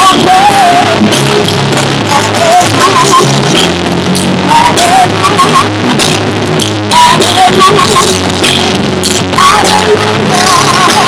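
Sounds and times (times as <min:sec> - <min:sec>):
drum kit with cymbals: 0:00.0 - 0:11.0
keyboard: 0:00.0 - 0:11.0
live gospel music: 0:00.0 - 0:11.0.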